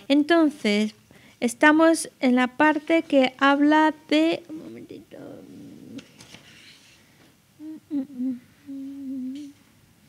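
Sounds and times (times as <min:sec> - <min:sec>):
person humming: 0:07.6 - 0:09.6.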